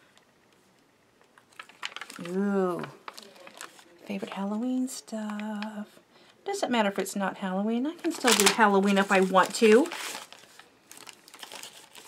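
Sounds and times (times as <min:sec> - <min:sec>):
plastic packaging handling clicks: 0:01.2 - 0:03.8, 0:08.0 - 0:12.0.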